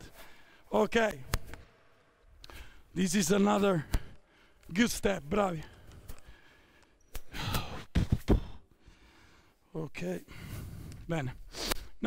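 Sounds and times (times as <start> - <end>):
quick sharp thumps: 7.4 - 8.6.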